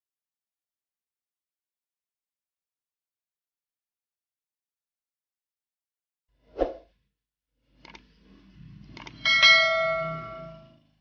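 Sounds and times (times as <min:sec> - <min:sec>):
bell chime ringing: 0:09.2 - 0:10.8.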